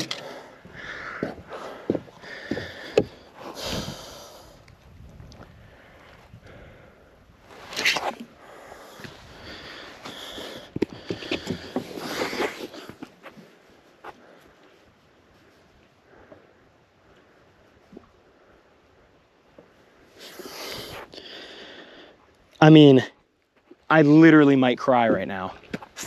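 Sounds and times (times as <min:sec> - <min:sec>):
man breathing hard: 0:00.0 - 0:04.7, 0:05.5 - 0:07.3, 0:08.3 - 0:13.1, 0:20.2 - 0:22.2.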